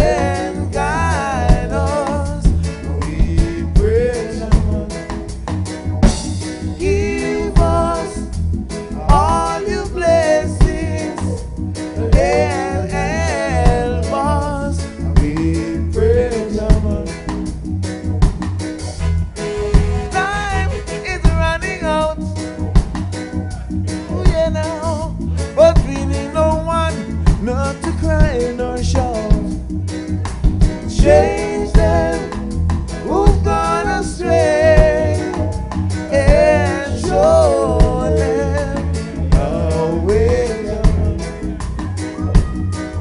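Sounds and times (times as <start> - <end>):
man singing: 0.0 - 5.2, 6.7 - 17.4, 20.1 - 22.5, 23.9 - 29.7, 30.8 - 41.8
bass and drum groove: 0.0 - 43.0
live reggae band playing: 0.0 - 43.0.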